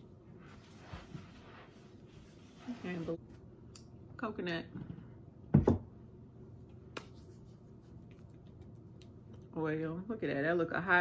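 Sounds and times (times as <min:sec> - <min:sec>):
hands rubbing together: 0:07.0 - 0:08.3.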